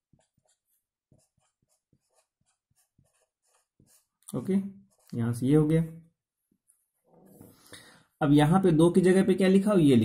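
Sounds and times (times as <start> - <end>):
marker pen writing on board: 0.0 - 5.4.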